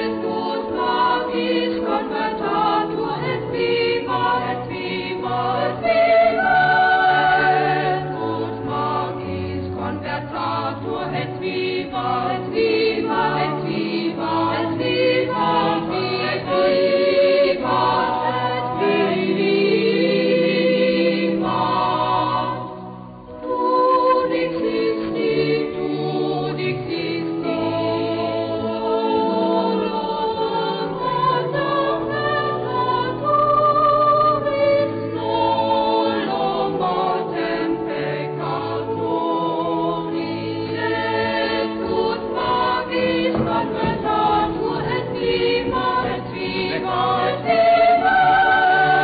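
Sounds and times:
boys' choir singing: 0.0s - 22.8s, 23.4s - 49.0s.

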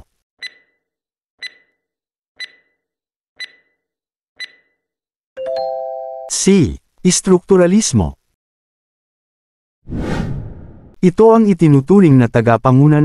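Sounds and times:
timer ticks: 0.4s - 1.8s, 2.4s - 3.8s, 4.4s - 4.8s.

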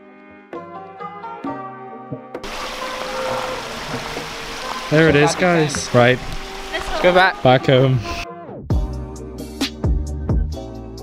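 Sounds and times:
water splashing over rocks: 2.4s - 7.7s.

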